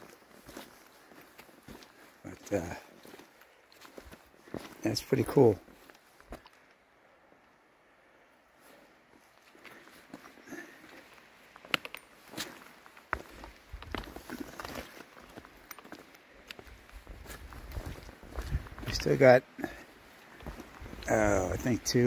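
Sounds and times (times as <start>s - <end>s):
footsteps on dirt and rock trail: 0.0s - 6.7s, 8.6s - 22.0s.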